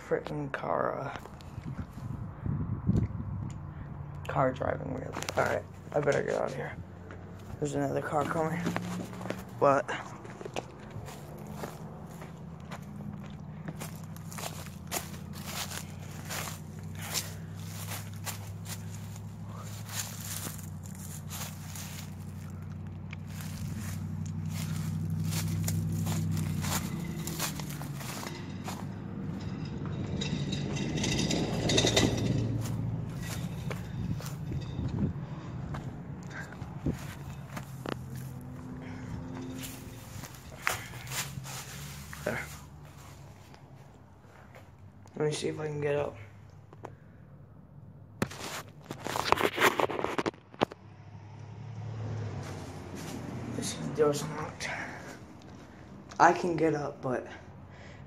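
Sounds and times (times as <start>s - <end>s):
car engine humming: 0.0s - 58.0s
footsteps on grass and pavement: 4.6s - 44.7s, 52.4s - 56.2s
car passing by: 6.6s - 44.6s, 50.9s - 56.0s.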